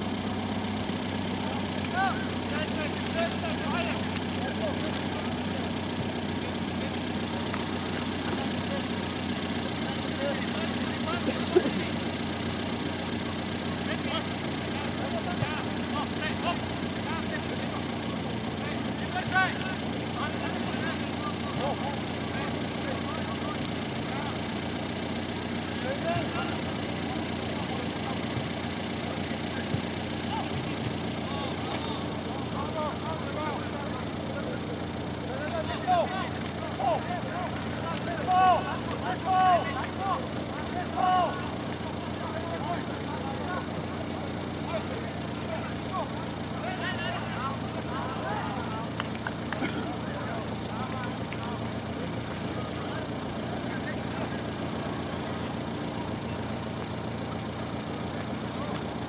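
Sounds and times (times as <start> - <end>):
voices calling and shouting: 0.0 - 59.0
short shouts: 35.6 - 41.6.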